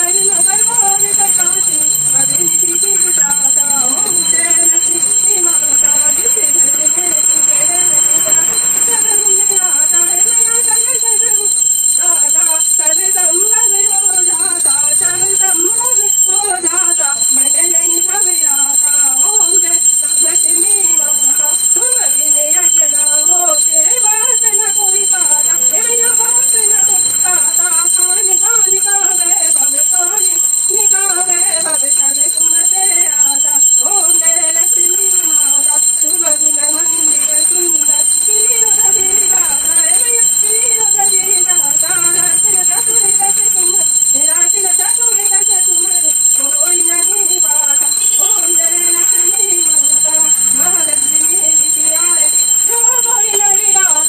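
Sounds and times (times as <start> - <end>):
hand bell ringing: 0.0 - 54.0
voices singing a hymn: 0.0 - 54.0.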